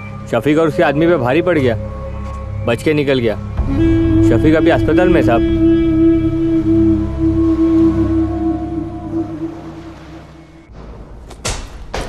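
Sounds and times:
sustained wavering held tone: 0.0 - 10.7
low rumble: 3.4 - 11.9.

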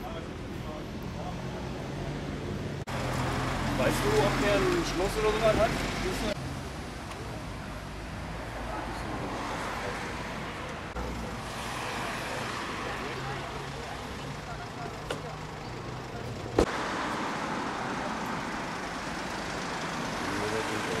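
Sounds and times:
street traffic noise: 0.0 - 21.0.

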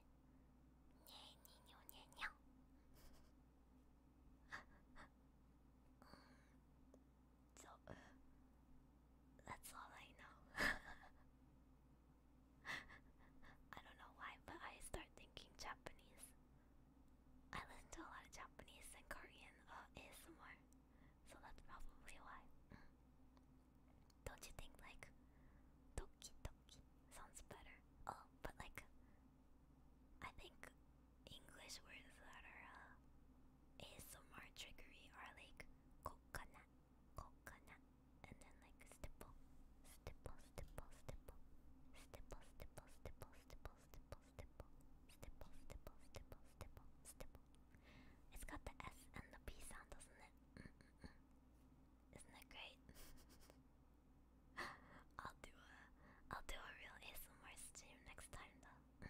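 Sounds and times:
woman whispering: 1.0 - 2.4, 4.5 - 5.1, 7.6 - 8.2, 9.4 - 11.2, 12.6 - 16.4, 17.5 - 22.9, 24.1 - 25.2, 26.0 - 29.0, 30.2 - 33.0, 33.8 - 47.5, 48.3 - 51.2, 52.1 - 53.4, 54.6 - 59.0.

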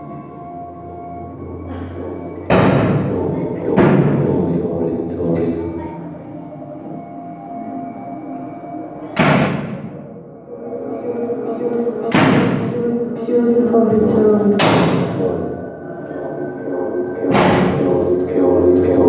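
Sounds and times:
electronic drones: 0.0 - 19.0
steady high whine: 0.0 - 19.0
heavy reverberant hits: 1.8 - 5.4, 9.1 - 10.2, 12.0 - 13.2, 13.8 - 18.8.

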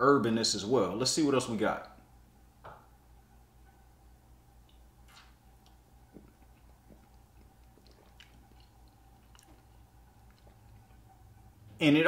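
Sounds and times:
lip and tongue clicks: 5.6 - 11.5.

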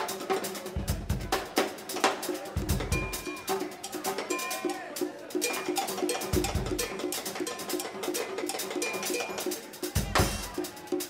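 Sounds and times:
cowbell struck in rhythm: 0.0 - 11.0
crisp high percussion strokes: 0.0 - 11.0.

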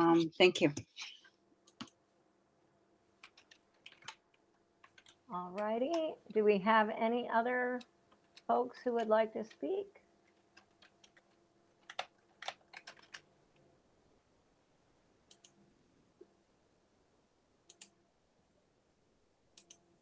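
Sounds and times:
computer keys clicking: 1.7 - 2.0, 3.2 - 6.1, 10.6 - 13.3, 15.3 - 15.6, 17.7 - 17.9, 19.6 - 19.8.

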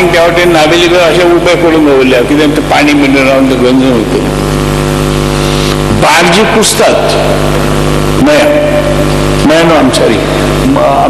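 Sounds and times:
man speaking: 0.0 - 4.4, 5.9 - 7.5, 8.2 - 11.0
steady buzzing hum: 0.0 - 11.0.

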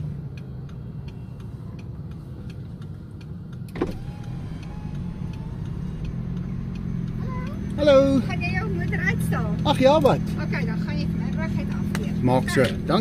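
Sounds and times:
car engine running low hum: 0.0 - 13.0
faint ticking: 0.0 - 13.0.

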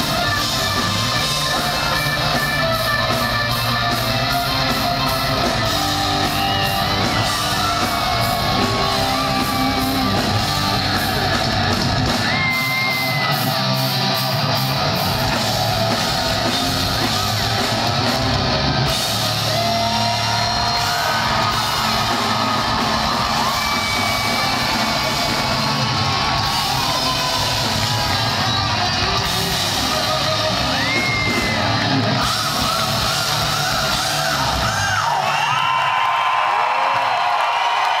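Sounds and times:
hard rock band playing live: 0.0 - 35.6
crowd yelling and cheering: 0.0 - 38.0.

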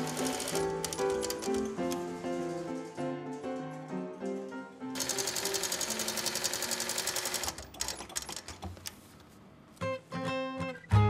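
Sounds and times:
background music: 0.0 - 7.5, 9.8 - 11.0
sewing machine stitching leather: 5.0 - 8.7.

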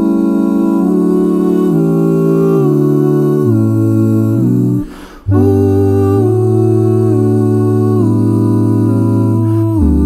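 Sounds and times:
male voices humming in harmony: 0.0 - 10.0.

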